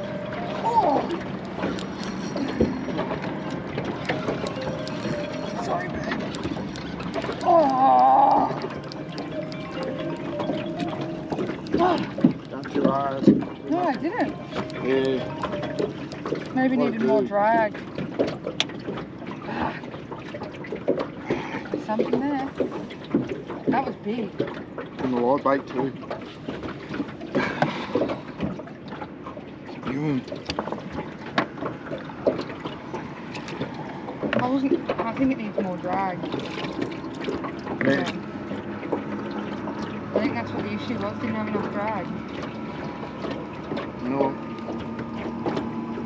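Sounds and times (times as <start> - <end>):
steady background hum: 0.0 - 46.0
indistinct voices talking: 4.2 - 17.8.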